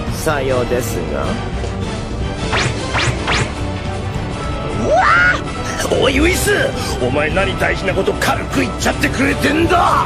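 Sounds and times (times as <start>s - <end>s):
anime soundtrack music: 0.0s - 10.0s.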